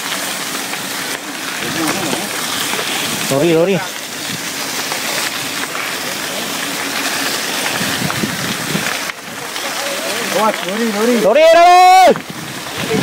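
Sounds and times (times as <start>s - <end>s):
bike tyres on loose dirt: 0.0s - 13.0s
wind rushing on microphone: 7.6s - 9.0s, 12.1s - 13.0s.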